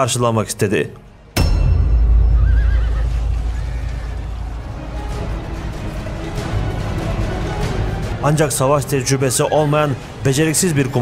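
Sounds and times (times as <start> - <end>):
horse whinnying: 2.4 - 4.2.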